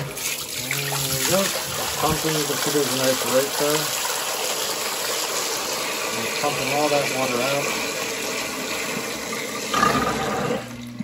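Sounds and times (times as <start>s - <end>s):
water gushing from hose: 0.0s - 10.8s
water splashing into sink: 0.0s - 11.0s.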